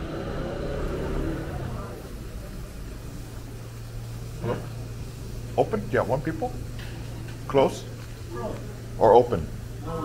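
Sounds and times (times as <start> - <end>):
low street rumble: 0.0 - 10.0
steady low hum: 0.0 - 10.0.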